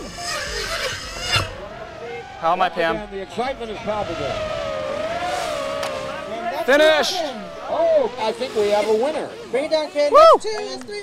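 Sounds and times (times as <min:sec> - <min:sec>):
racing quadcopters buzzing past: 0:00.0 - 0:10.0.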